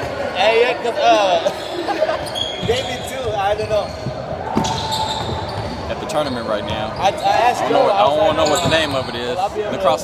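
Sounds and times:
basketballs bouncing: 2.6 - 7.0.

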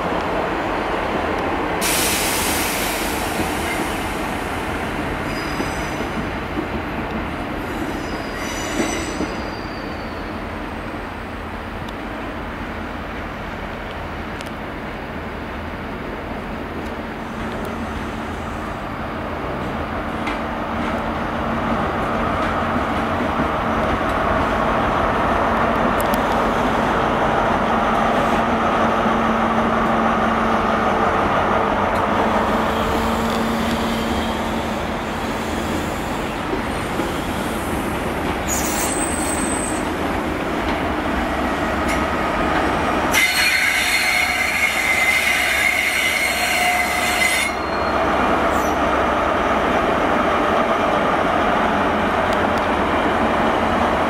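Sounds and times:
coaches rumbling on rails: 0.0 - 54.0
diesel train engine hum: 0.0 - 54.0
high-pitched wheel squeal: 5.2 - 6.0, 7.7 - 10.4, 38.5 - 39.9, 43.1 - 48.8.

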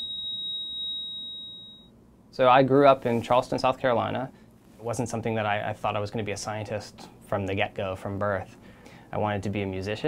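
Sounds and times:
heart monitor flatline tone: 0.0 - 1.9.

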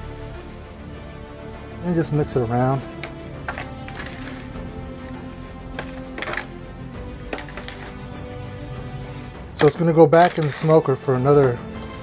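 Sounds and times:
background music sustained tones: 0.0 - 12.0
fork scraping in foil pan: 3.4 - 4.6.

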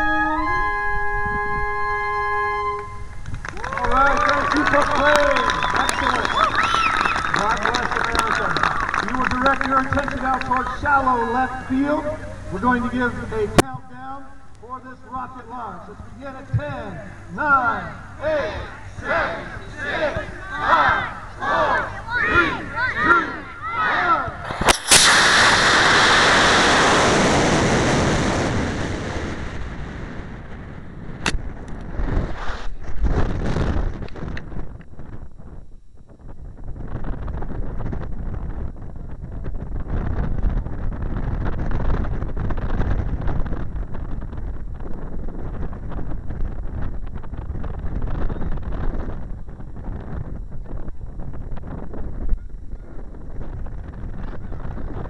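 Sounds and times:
wind rushing over microphone: 0.0 - 14.8, 15.5 - 55.0
ejection charge pop: 24.4 - 28.5
rocket motor rushing roar: 24.4 - 30.6
rocket motor igniting crack: 24.4 - 34.8.

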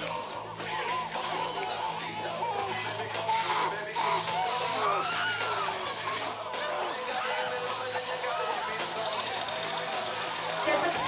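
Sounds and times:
voices crying out: 0.0 - 11.0.

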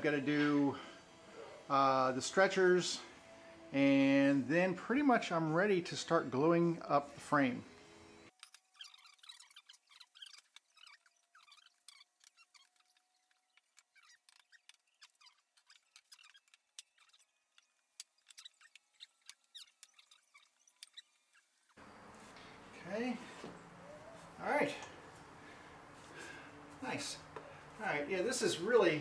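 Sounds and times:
wooden boards clicking and squeaking: 8.4 - 21.8.

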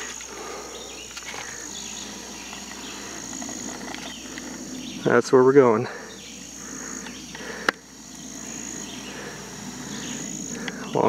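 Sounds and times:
insects chorus: 0.0 - 11.0.

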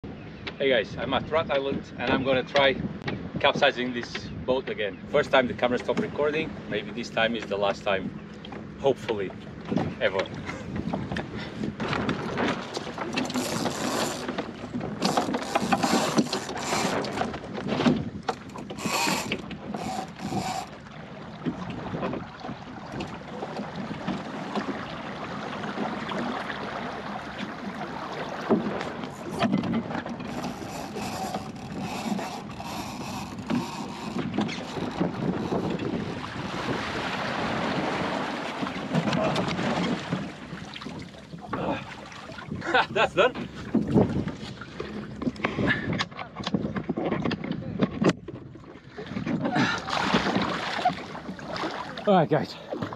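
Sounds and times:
wind on microphone: 0.0 - 8.2, 9.4 - 51.8
water washing against boat hull: 5.2 - 52.9.

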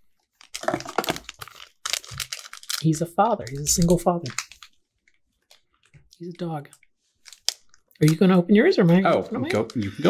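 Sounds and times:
packaging crinkling: 0.2 - 6.0, 7.2 - 8.2.

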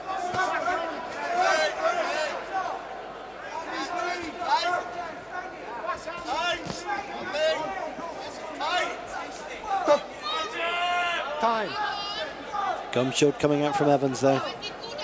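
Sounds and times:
crowd shouting: 0.0 - 15.0.

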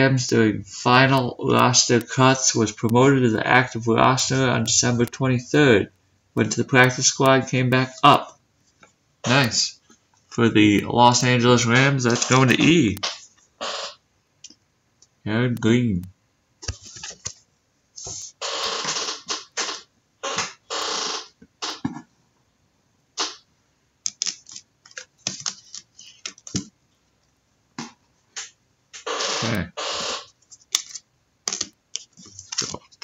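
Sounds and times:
plastic rustling: 30.4 - 33.0
plastic clicks: 30.6 - 33.0.

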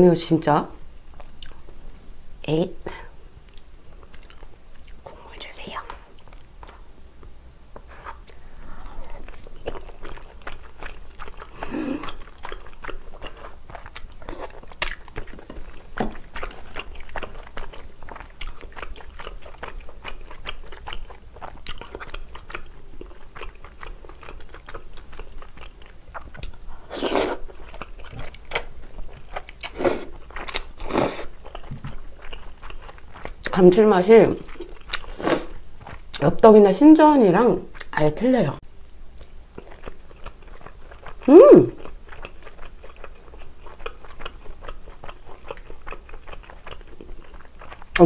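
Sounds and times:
chewing with wet mouth clicks: 3.5 - 5.1, 9.1 - 33.6, 34.4 - 35.1, 37.7 - 38.0, 39.2 - 48.0.

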